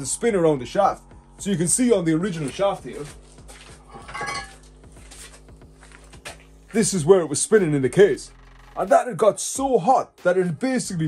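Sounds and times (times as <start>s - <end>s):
metal parts clinking and rattling: 3.9s - 4.6s.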